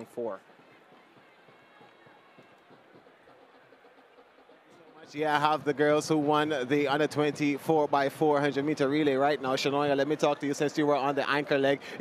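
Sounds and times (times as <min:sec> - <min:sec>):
open-air stadium ambience: 0:00.0 - 0:12.0.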